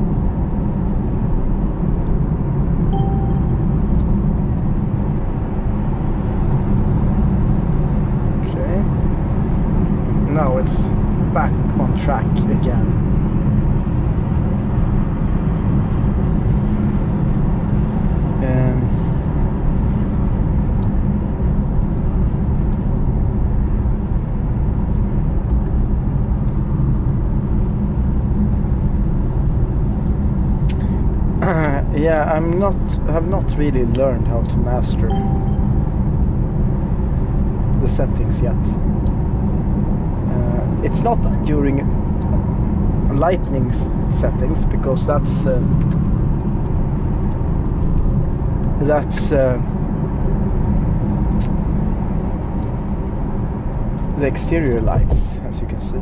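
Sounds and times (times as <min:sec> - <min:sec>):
car cabin road rumble: 0:00.0 - 0:56.0.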